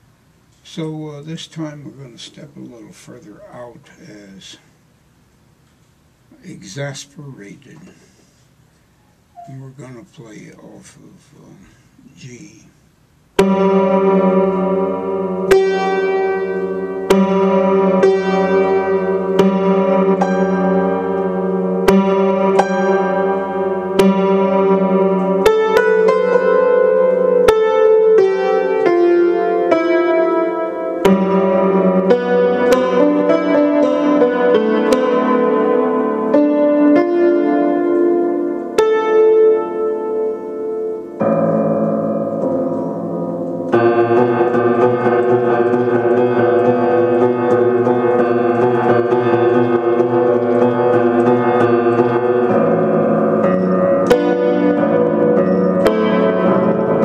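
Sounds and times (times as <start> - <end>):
slow piano piece: 6.2 - 12.6, 13.2 - 57.0.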